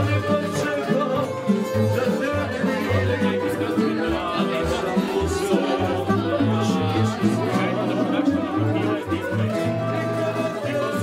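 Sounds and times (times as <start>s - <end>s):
diners chatting: 0.0s - 11.0s
live band music: 0.0s - 11.0s.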